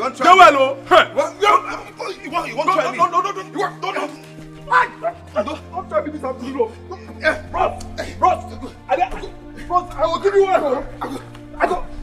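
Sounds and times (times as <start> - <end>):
men shouting and grunting: 0.0 - 12.0
low drone film score: 3.4 - 12.0.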